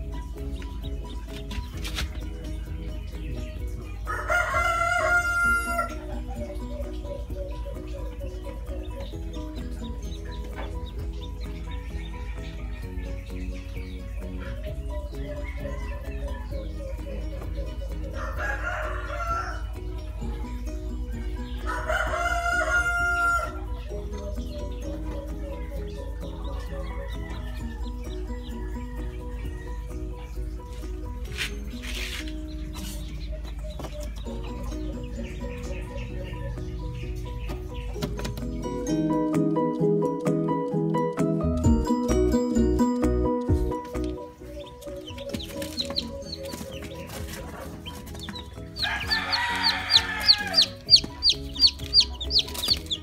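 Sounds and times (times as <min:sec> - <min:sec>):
background music: 0:00.0 - 0:53.0
rooster crowing: 0:04.1 - 0:06.1, 0:15.4 - 0:16.6, 0:18.2 - 0:19.7, 0:21.6 - 0:23.6, 0:26.7 - 0:29.9, 0:48.8 - 0:52.3.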